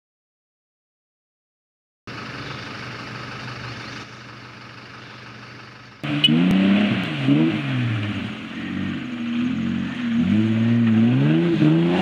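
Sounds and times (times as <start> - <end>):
engine idling: 2.1 - 6.5.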